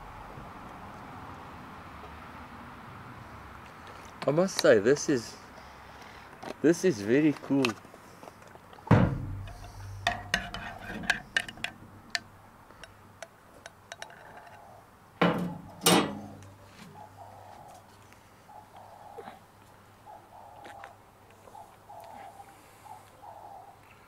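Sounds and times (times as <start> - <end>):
sharp knock: 8.9 - 10.4
mug and spoon clinking: 9.4 - 12.2.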